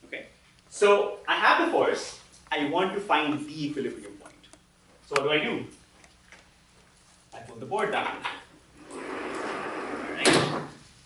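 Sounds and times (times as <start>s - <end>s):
chalkboard panel sliding: 8.8s - 10.3s.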